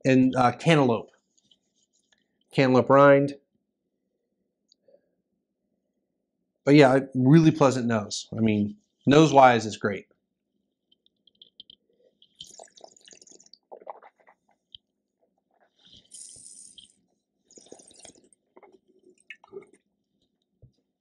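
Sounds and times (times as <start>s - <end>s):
wet mouth noises: 11.3s - 14.8s, 15.6s - 19.8s
slurping wine: 17.5s - 19.8s.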